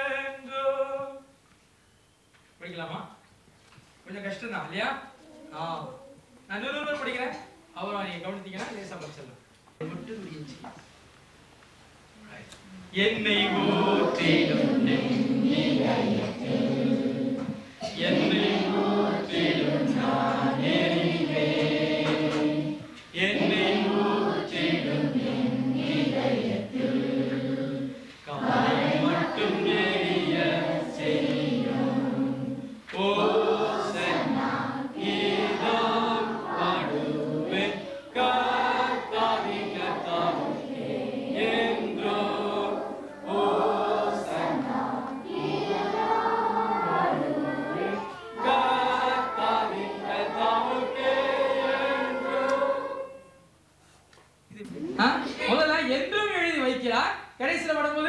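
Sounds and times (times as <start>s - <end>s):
children singing together: 13.3s - 53.5s.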